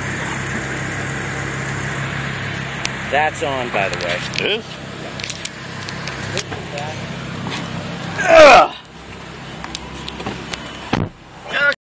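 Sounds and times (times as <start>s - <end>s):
car engine idling: 0.0s - 11.8s.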